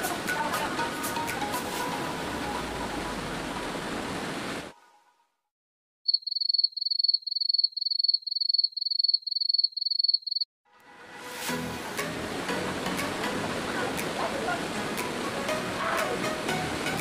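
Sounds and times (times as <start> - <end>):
small waterfall rushing: 0.0 - 4.7, 11.5 - 17.0.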